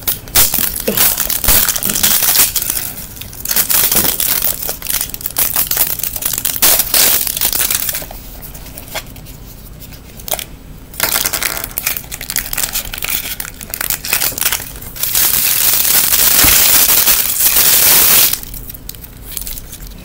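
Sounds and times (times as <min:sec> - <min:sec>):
wrapper crinkling: 0:00.0 - 0:10.4, 0:11.0 - 0:20.0.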